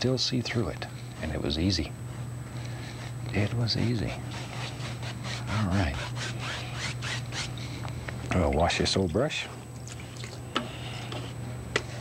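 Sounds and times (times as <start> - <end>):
steady low hum: 0.0 - 12.0
paint brush rubbing on canvas: 3.7 - 7.6.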